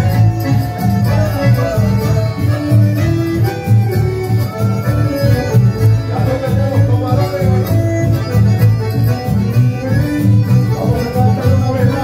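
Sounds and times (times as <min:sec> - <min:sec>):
acoustic guitar: 0:00.0 - 0:12.0
bandoneon and accordions: 0:00.0 - 0:12.0
repeating bass line: 0:00.0 - 0:12.0.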